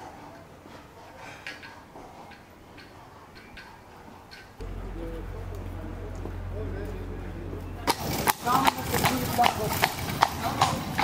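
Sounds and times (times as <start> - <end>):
low rumble: 4.6 - 8.9.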